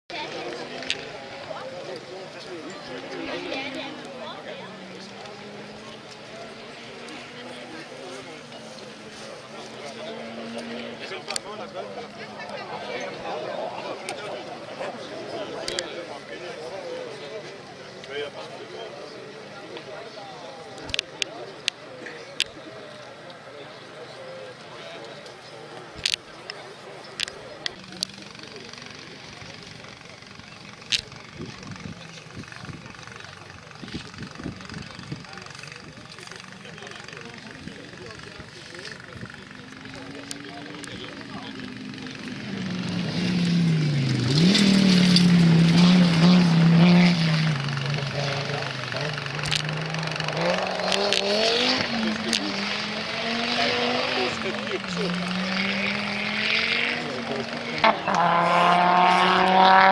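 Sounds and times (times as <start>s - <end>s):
rally car engine revving: 2.8s - 16.0s, 34.0s - 59.9s.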